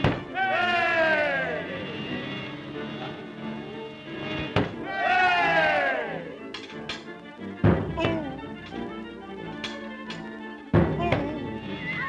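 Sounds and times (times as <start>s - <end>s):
orchestral cartoon music: 0.0s - 12.0s.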